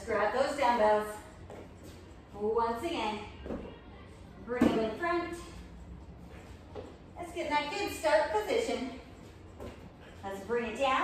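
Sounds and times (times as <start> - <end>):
woman's voice: 0.0 - 1.3, 2.3 - 3.4, 4.4 - 5.6, 7.2 - 9.1, 10.2 - 11.0.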